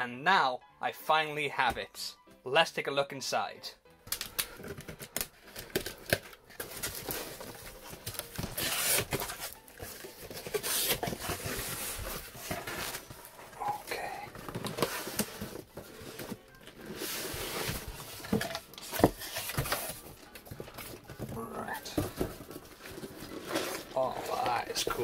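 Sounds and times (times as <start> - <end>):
cardboard scraping and rustling: 4.6 - 25.0.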